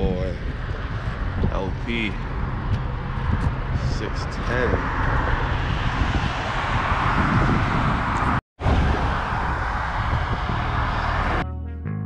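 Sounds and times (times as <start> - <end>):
low hum: 0.0 - 11.4
vehicle rumble and hiss: 0.1 - 6.6, 8.1 - 11.4.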